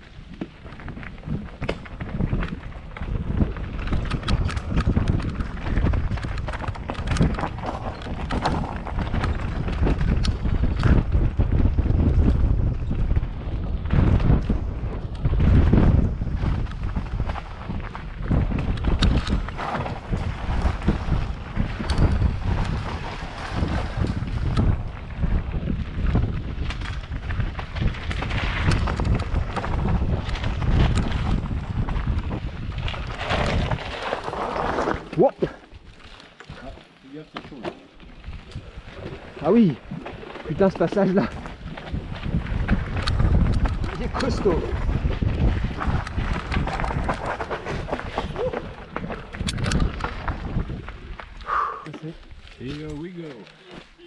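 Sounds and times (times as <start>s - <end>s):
wind buffeting microphone: 0.0s - 54.0s
bike rattling and knocking: 0.2s - 51.4s.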